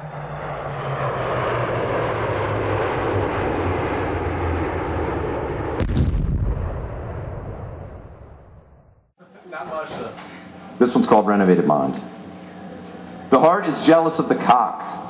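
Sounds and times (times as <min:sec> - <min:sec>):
rumbling explosion blast: 0:03.4 - 0:09.1
heavy boom: 0:05.6 - 0:09.1.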